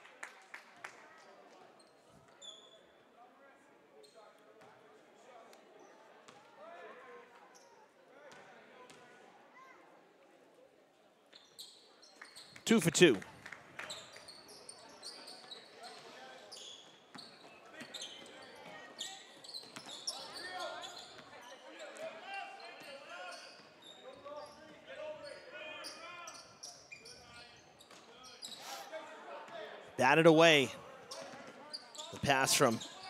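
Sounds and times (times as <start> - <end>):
crowd and player chatter: 12.7 - 13.4, 29.8 - 33.0.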